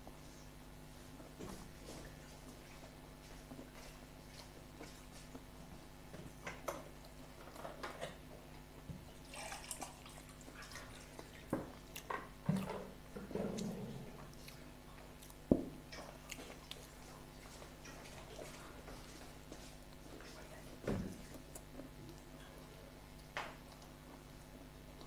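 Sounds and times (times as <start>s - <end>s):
faint steady hum: 0.0s - 25.0s
chewing and wet mouth noises: 2.1s - 5.6s, 6.4s - 25.0s.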